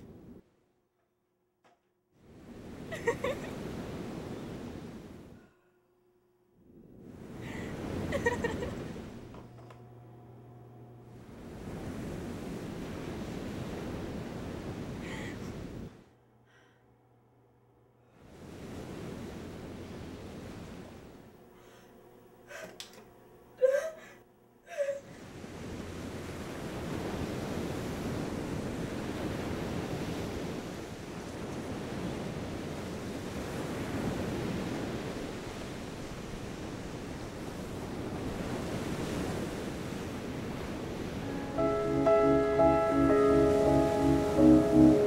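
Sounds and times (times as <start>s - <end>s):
ocean surf breaking on beach: 7.1s - 9.2s, 25.2s - 45.0s
music: 41.2s - 45.0s.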